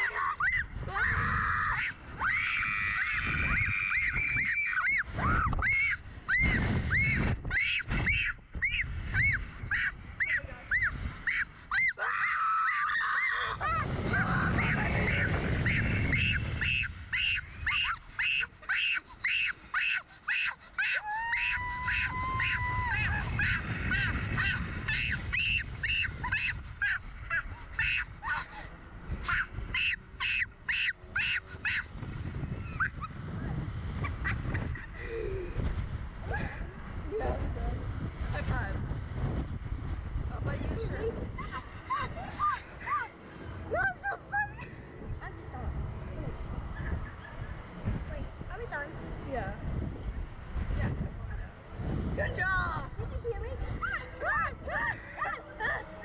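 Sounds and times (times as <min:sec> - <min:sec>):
riders screaming and yelling: 0:00.0 - 0:37.2, 0:51.3 - 0:56.0
wind rumbling over microphone: 0:00.0 - 0:56.0.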